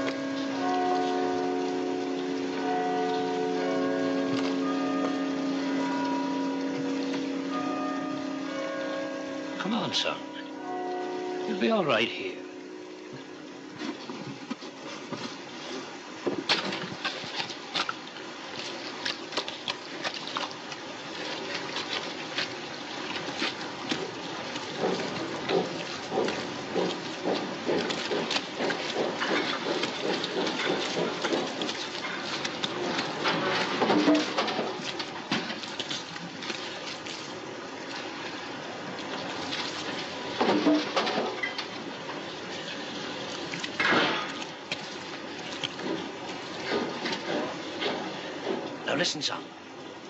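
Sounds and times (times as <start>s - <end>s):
steady rain falling: 0.0s - 50.0s.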